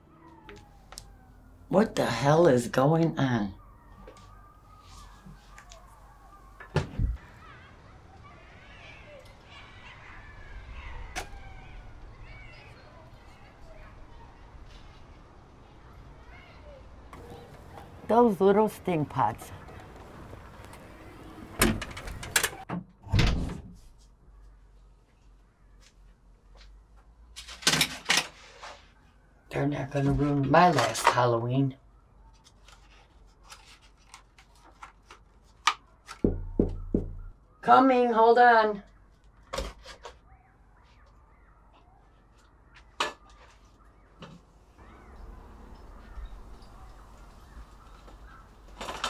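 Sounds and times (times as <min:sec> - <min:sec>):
door thump: 0:06.6 - 0:07.2, 0:36.2 - 0:37.3
door clicks and knocks: 0:21.4 - 0:23.6, 0:36.2 - 0:37.3.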